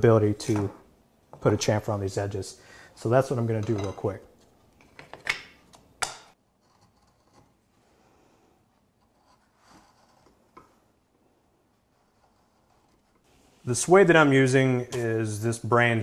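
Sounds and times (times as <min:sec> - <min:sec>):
gouge scraping wood: 0:06.6 - 0:07.6, 0:08.9 - 0:10.6, 0:11.7 - 0:13.4.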